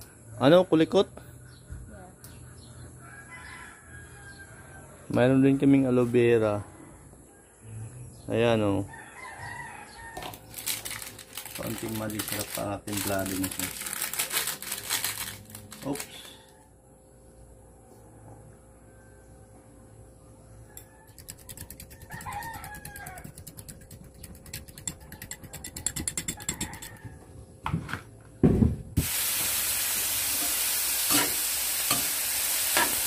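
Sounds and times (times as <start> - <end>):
rooster crowing: 3.0 - 5.1, 8.8 - 10.6, 20.6 - 23.5, 25.1 - 27.4
fork beating eggs in glass bowl: 21.0 - 27.1.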